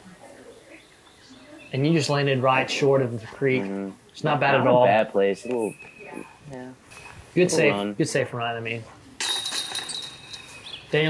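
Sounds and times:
disc hitting basket chains: 0:09.2 - 0:11.0.

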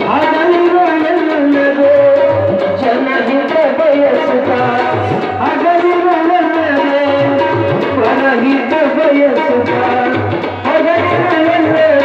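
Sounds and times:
harmonium: 0:00.0 - 0:12.0
man singing devotional song: 0:00.0 - 0:12.0
tabla strokes: 0:00.0 - 0:12.0.

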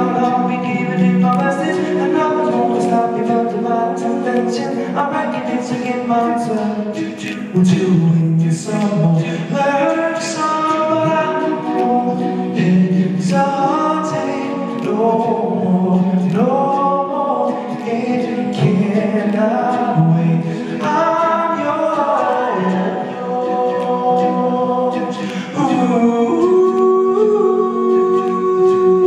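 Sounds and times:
male group singing in harmony: 0:00.0 - 0:29.0.

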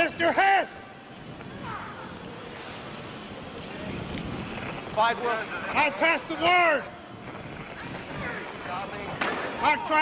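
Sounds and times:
faint distant voices: 0:00.0 - 0:10.0
steady rushing noise: 0:00.0 - 0:10.0.

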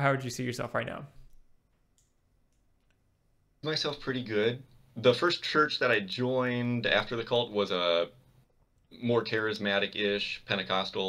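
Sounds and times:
faint clicks: 0:01.2 - 0:03.0.

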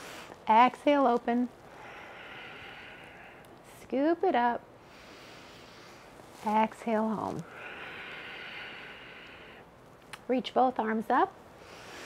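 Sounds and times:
long exhaled breath: 0:07.5 - 0:09.7.

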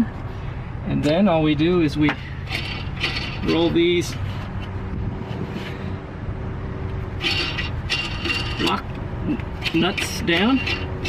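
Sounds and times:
engine rumble: 0:00.0 - 0:11.0.

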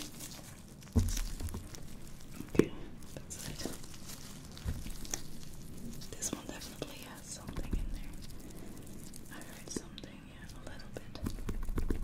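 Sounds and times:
soft whispering: 0:02.3 - 0:11.5
gloved fingers clicking and crackling: 0:03.5 - 0:10.0, 0:11.2 - 0:12.0.

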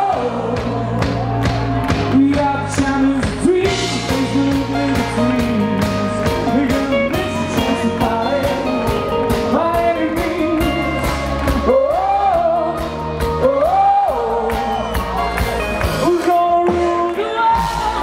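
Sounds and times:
bass guitar: 0:00.0 - 0:18.0
drums keeping a steady beat: 0:00.0 - 0:18.0
electric guitar: 0:00.0 - 0:18.0
person singing: 0:00.0 - 0:18.0.

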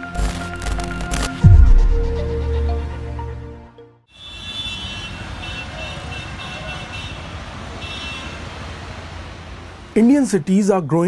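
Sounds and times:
traffic noise: 0:04.1 - 0:11.0.

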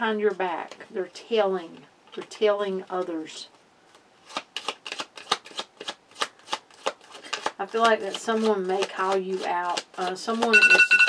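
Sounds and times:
cards being shuffled: 0:03.9 - 0:10.8.

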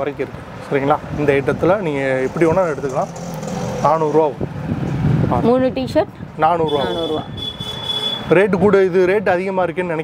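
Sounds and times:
man speaking: 0:06.3 - 0:07.4, 0:08.2 - 0:10.0.

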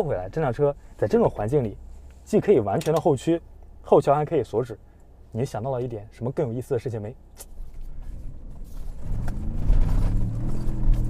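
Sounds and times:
sharp click: 0:07.3 - 0:07.6.

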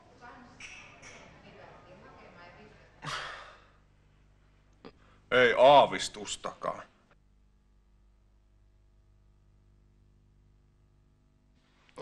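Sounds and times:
man sighing: 0:03.0 - 0:03.8.

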